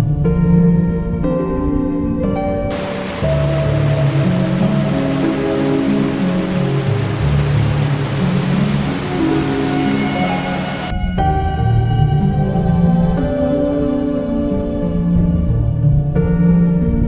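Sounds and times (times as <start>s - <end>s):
music with sustained notes: 0.0s - 17.0s
waterfall rushing over rocks: 2.7s - 11.0s.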